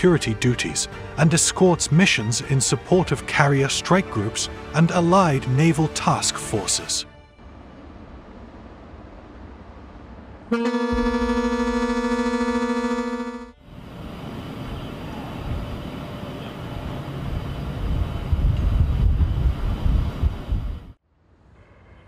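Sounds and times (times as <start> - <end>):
ship's horn blast: 10.5 - 14.6.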